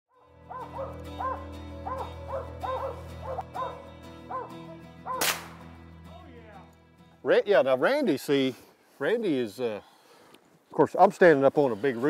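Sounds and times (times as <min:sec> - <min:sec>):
dogs barking: 0:00.5 - 0:05.3.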